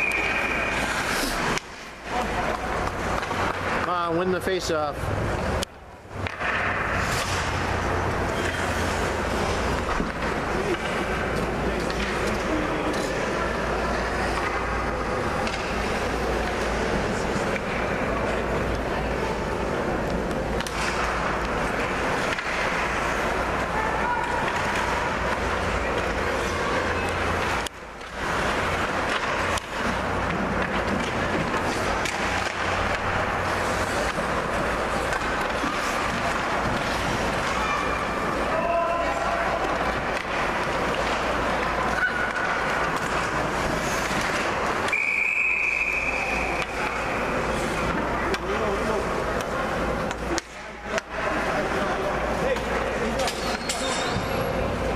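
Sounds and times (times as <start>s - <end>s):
spectators' voices and shouts: 6.2s - 54.9s
referee's whistle blast: 44.9s - 46.5s.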